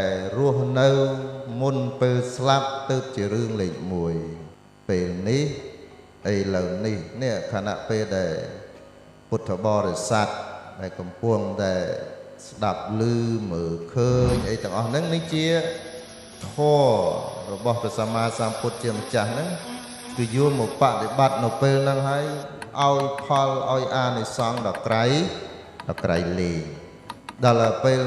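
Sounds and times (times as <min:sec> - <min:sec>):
man chanting: 0:12.6 - 0:15.8, 0:16.4 - 0:25.1.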